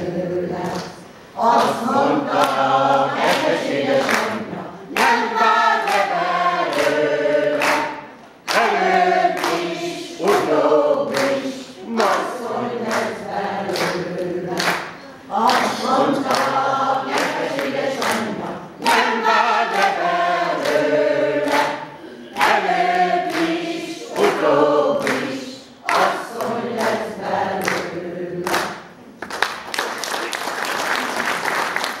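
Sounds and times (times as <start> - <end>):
women's choir singing unaccompanied: 0.0 - 29.0
audience applause: 29.2 - 32.0.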